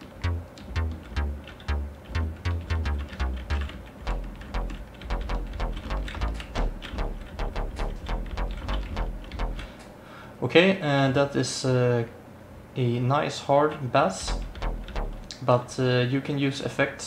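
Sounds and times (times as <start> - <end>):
overdriven synth bass notes: 0.0 - 9.8, 14.2 - 15.3.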